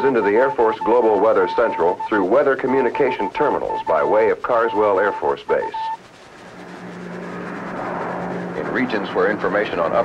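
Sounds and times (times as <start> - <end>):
aircraft engines droning: 0.0 - 10.0.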